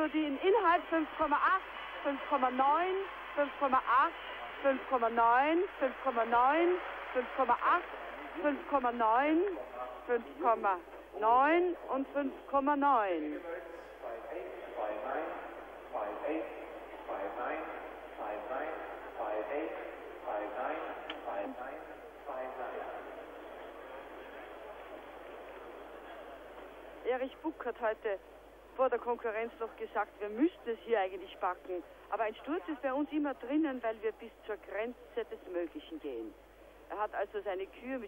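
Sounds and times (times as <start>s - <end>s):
commentator speaking: 0.0s - 23.4s, 28.8s - 38.0s
man talking: 13.3s - 23.4s.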